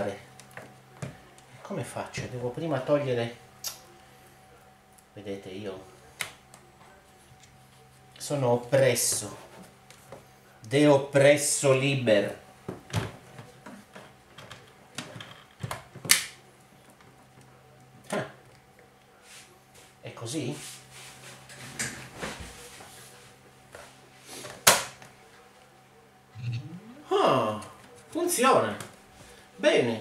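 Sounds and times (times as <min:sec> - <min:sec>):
faint steady hum: 0:00.0 - 0:21.1, 0:22.8 - 0:30.0.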